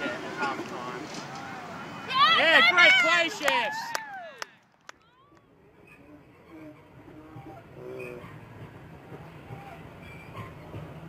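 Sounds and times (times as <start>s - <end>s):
distant players shouting: 0.0s - 8.5s.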